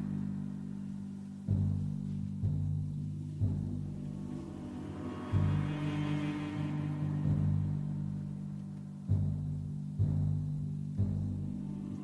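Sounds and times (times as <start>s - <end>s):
low orchestral music: 0.0s - 12.0s.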